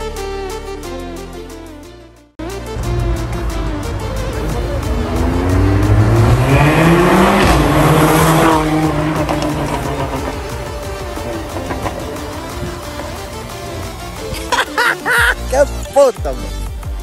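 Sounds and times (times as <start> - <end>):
car engine accelerating hard: 2.6 - 14.5.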